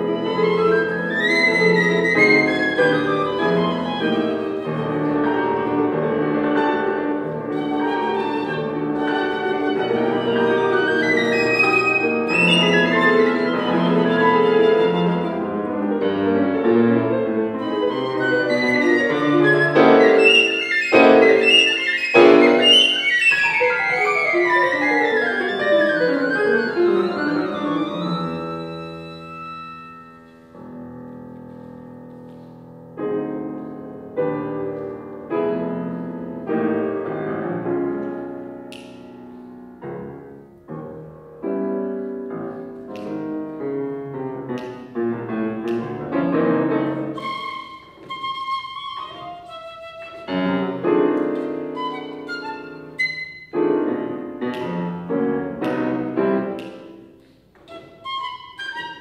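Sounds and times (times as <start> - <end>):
piccolo and piano sonata: 0.0 - 59.0.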